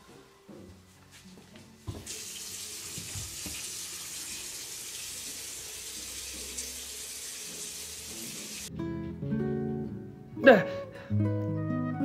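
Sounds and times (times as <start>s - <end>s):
water running into basin: 2.0s - 8.7s.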